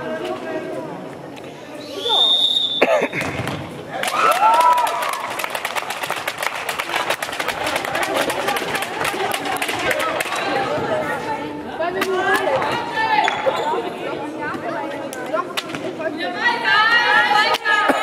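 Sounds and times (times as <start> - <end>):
referee's whistle blast: 1.8 - 2.8
spectators clapping and cheering: 3.9 - 10.8
shouts: 4.0 - 5.3.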